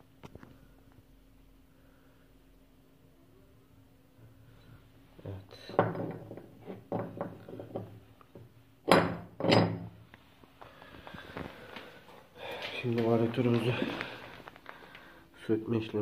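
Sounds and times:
parts knocking on wooden bench: 5.7s - 9.9s.

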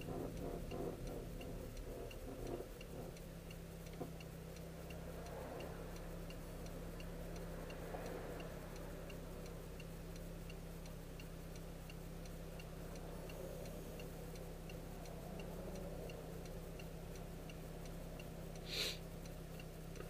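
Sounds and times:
low steady hum: 0.0s - 20.0s
turn signal ticking: 0.0s - 20.0s.

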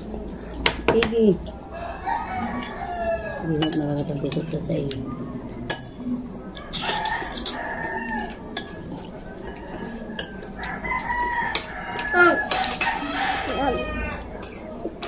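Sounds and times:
rooster crowing: 1.7s - 3.6s, 6.6s - 8.5s, 9.2s - 14.5s
cutlery clinking on plates: 3.4s - 4.6s, 6.6s - 13.6s.

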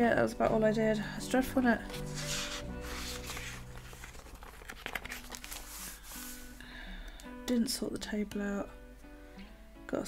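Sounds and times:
quiet background music: 0.0s - 10.0s
paper pages flipping: 1.8s - 6.6s.

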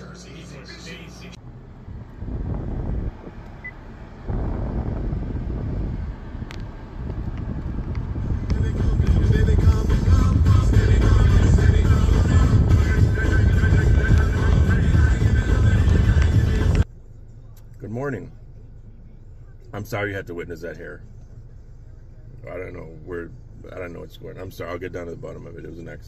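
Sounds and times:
car radio playing music: 0.0s - 1.7s, 3.4s - 26.0s.

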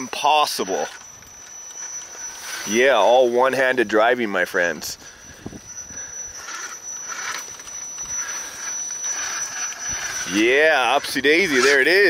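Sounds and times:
electric motor whirring faintly: 0.0s - 12.0s.

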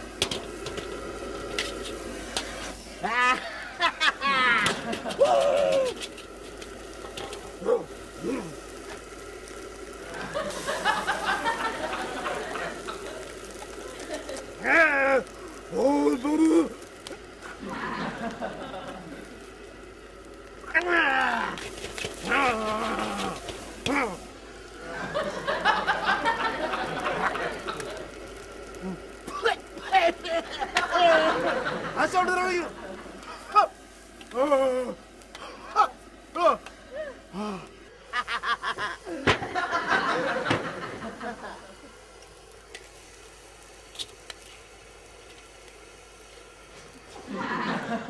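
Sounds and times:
steady background hiss: 0.0s - 48.0s
person chuckling: 2.9s - 6.0s, 7.6s - 8.7s, 10.0s - 19.3s, 22.2s - 24.2s, 24.8s - 28.1s, 28.8s - 32.0s, 34.4s - 41.8s, 47.1s - 48.0s
loud short exclamation: 4.5s - 6.0s
non-word vocal sounds: 7.6s - 8.6s, 20.7s - 21.6s, 22.2s - 24.3s, 34.3s - 37.8s
person's voice: 7.6s - 8.6s, 14.6s - 16.8s, 20.7s - 21.6s, 22.2s - 24.2s, 28.8s - 33.7s.

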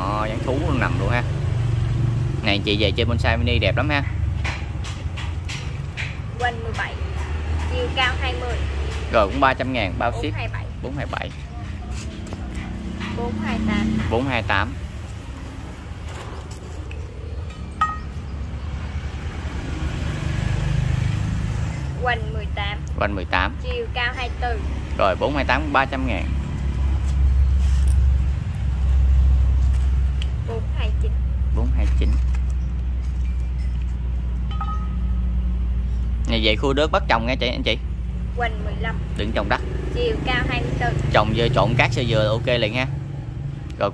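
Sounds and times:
short clink: 34.5s - 35.2s.

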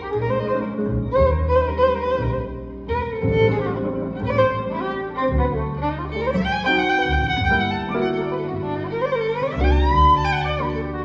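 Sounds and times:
bowed jazz violin solo: 0.0s - 11.0s
upright double bass: 0.0s - 11.0s.

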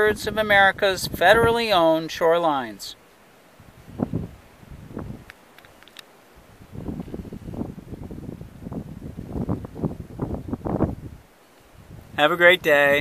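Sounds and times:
wind buffeting microphone: 0.0s - 2.2s, 3.6s - 13.0s
faint clicks: 5.2s - 6.1s.

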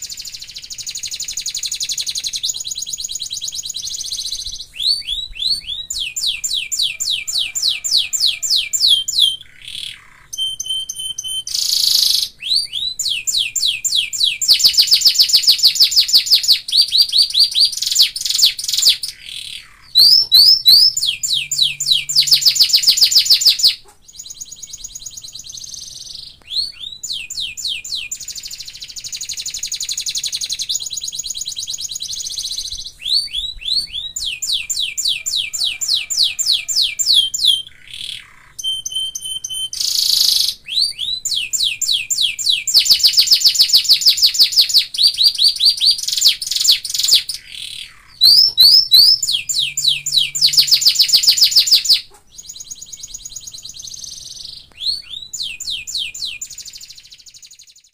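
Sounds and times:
canary singing trills: 0.0s - 57.9s.

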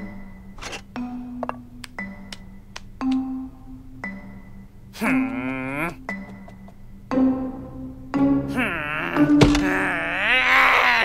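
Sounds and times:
background music: 0.0s - 11.0s
cartoon character grumbling: 5.0s - 6.0s, 8.4s - 11.0s
thunk: 9.3s - 9.7s.

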